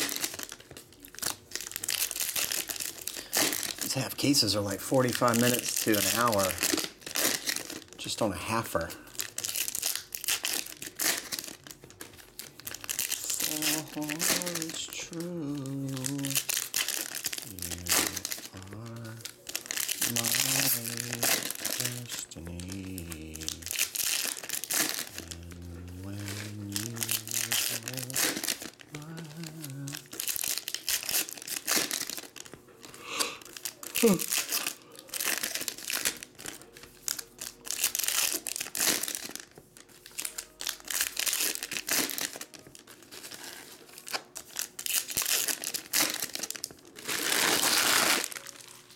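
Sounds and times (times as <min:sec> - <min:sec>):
foil wrappers crinkling and tearing: 0:00.0 - 0:48.9.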